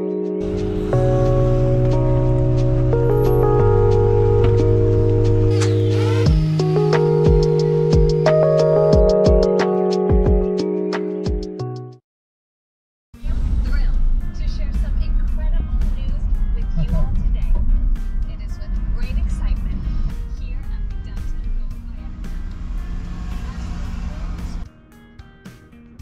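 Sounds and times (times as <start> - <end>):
music: 0.0 - 12.0, 13.2 - 26.0
car road and wind rumble: 0.4 - 8.9, 13.2 - 24.7.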